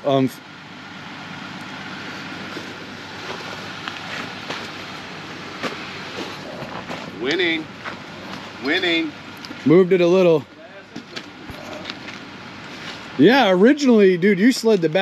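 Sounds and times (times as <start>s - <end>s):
electric winch running under load: 0.0s - 10.9s.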